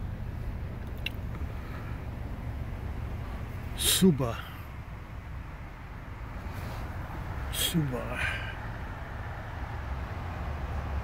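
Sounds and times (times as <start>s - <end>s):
car driving low rumble: 0.0s - 11.0s.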